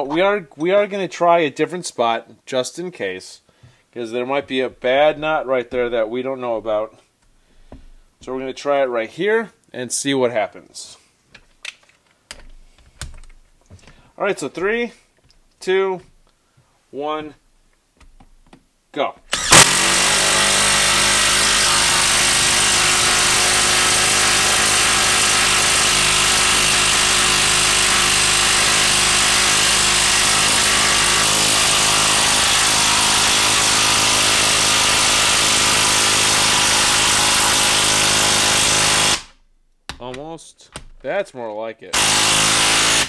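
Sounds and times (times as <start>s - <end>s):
impact wrench hammering: 19.3s - 39.3s, 42.0s - 43.0s.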